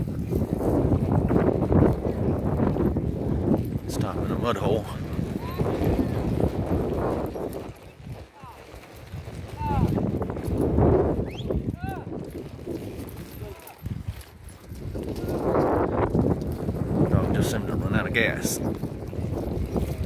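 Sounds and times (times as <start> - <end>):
horse hooves clip-clopping: 0.0 - 20.0
wind gusting on microphone: 0.0 - 20.0.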